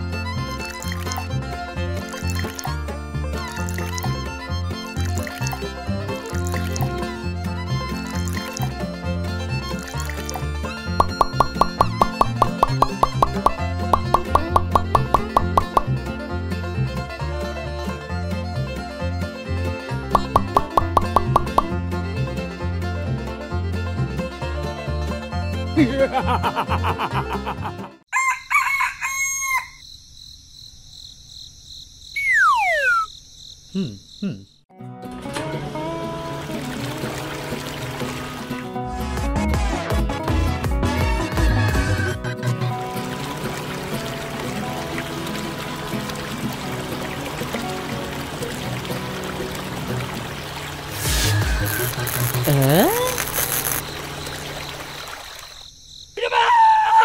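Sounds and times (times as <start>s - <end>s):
background music with steady beat: 10.3s - 16.2s, 20.0s - 22.0s
rooster crowing: 28.1s - 29.8s
falling whistle-like glide: 32.2s - 33.1s.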